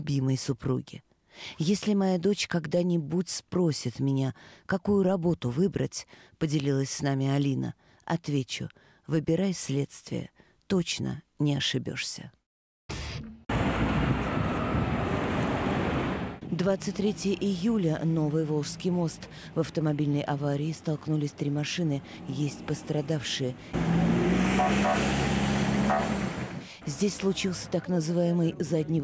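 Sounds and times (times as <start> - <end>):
road traffic with deep rumble: 13.5 - 29.0
vehicle engine running: 22.2 - 26.6.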